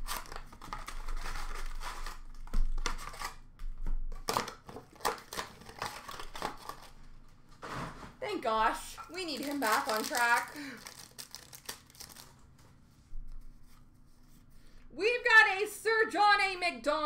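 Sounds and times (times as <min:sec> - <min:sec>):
wrapper ripping: 0:00.0 - 0:03.4, 0:04.1 - 0:07.0, 0:09.1 - 0:12.4
card pack wrapper crinkling: 0:00.0 - 0:03.5, 0:04.1 - 0:07.0, 0:09.0 - 0:12.5.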